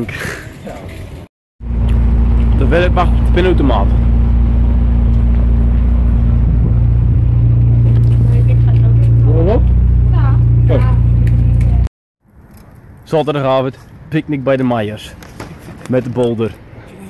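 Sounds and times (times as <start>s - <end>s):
loud low drone: 1.6s - 11.9s.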